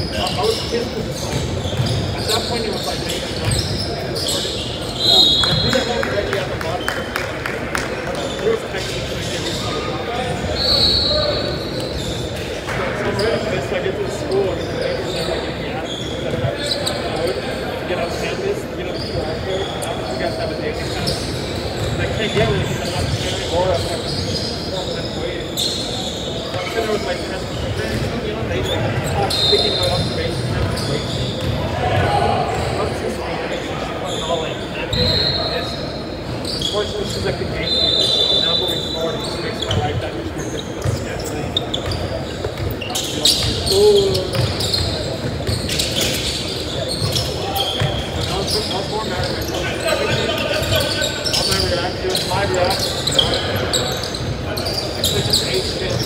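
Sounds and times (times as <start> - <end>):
shoe squeaks: 0.0 - 7.2, 8.1 - 56.0
players' voices: 0.0 - 56.0
basketball bouncing on court: 1.2 - 2.4, 44.3 - 46.2.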